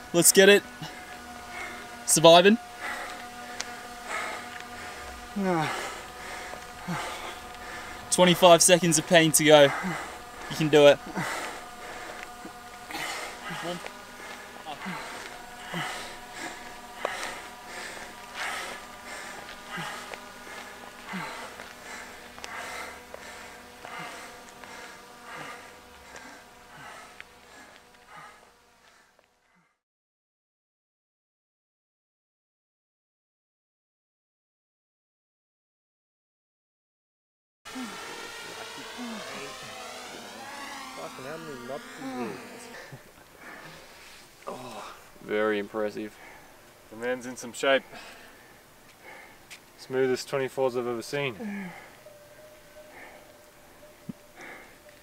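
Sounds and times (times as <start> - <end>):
steady background noise: 0.0 - 29.0
drone propellers humming: 0.0 - 29.6, 37.7 - 55.0
person breathing hard: 0.7 - 2.0, 2.7 - 8.1, 9.6 - 29.8, 41.8 - 45.2, 46.1 - 46.7, 47.8 - 49.7, 51.4 - 55.0
man groaning and moaning: 5.3 - 6.1, 6.8 - 7.6, 9.6 - 17.5, 21.0 - 21.6, 37.7 - 41.0, 41.6 - 43.0, 44.4 - 45.1, 51.3 - 51.9.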